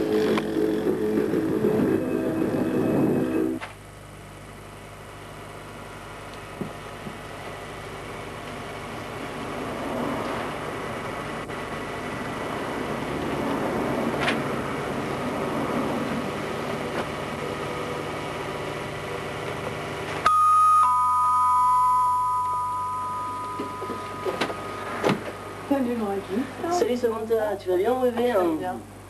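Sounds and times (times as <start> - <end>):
steady background noise: 0.0 - 29.0
two-tone door chime: 20.2 - 25.7.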